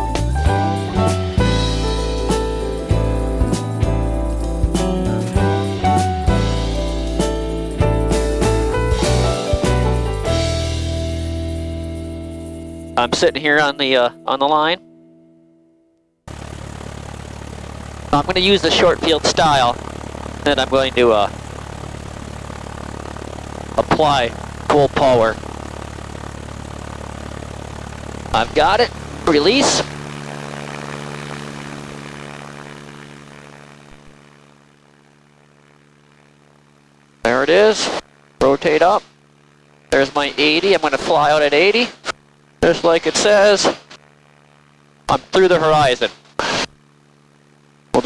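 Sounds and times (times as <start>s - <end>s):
propeller plane engine running: 0.0s - 15.5s, 16.2s - 48.0s
held music chord: 0.0s - 33.9s.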